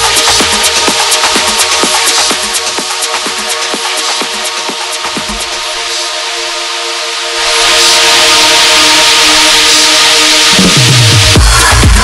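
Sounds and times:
held synth chords: 0.0 - 12.0
white-noise swell: 5.5 - 11.0.

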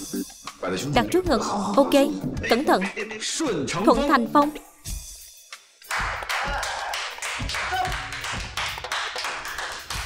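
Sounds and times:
people clapping: 5.8 - 10.0.

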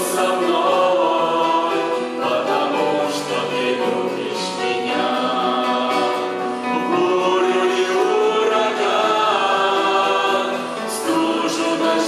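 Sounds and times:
group singing in harmony: 0.0 - 12.0
piano: 0.0 - 12.0.

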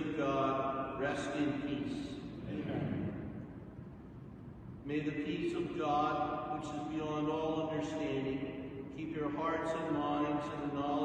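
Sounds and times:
man chanting a prayer: 0.0 - 3.1, 4.9 - 11.0.

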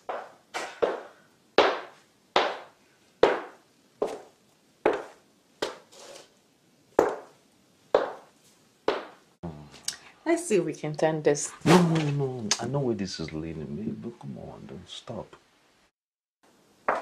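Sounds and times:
boot footsteps on hard floor: 0.0 - 5.9, 7.0 - 9.2.

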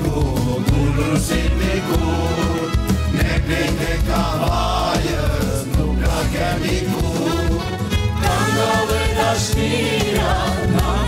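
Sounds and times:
band accompaniment: 0.0 - 11.0
men singing in a group: 0.0 - 11.0.

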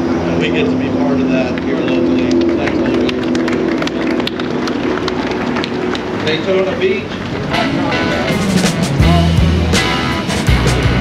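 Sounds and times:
crowd clapping: 1.4 - 7.6.

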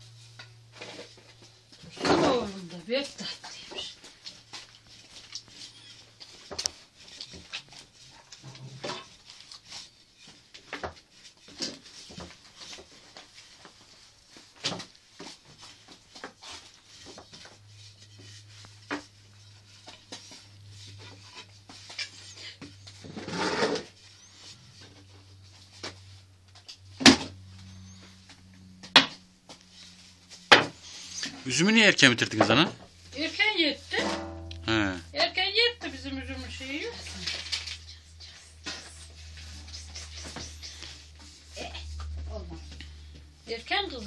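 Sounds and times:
faint low hum: 23.9 - 44.0.

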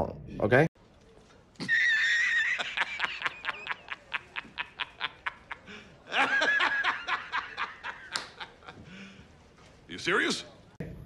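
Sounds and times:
man laughing: 1.6 - 8.8.

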